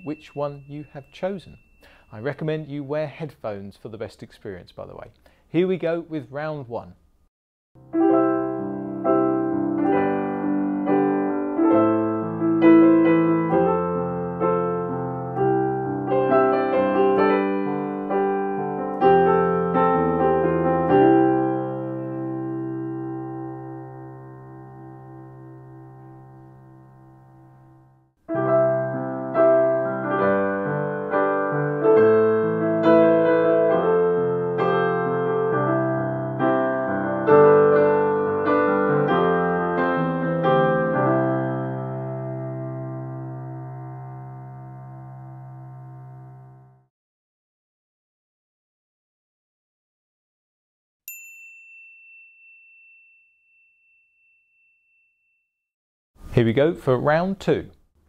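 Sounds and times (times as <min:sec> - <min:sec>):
bell-like ding: 0:00.0 - 0:02.6, 0:51.1 - 0:55.5
slow piano melody over chords: 0:07.8 - 0:46.9.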